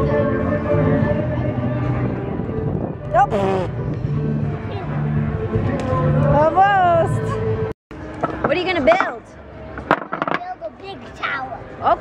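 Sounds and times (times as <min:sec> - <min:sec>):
background music: 0:00.0 - 0:09.9
wooden blocks knocking: 0:09.8 - 0:10.5.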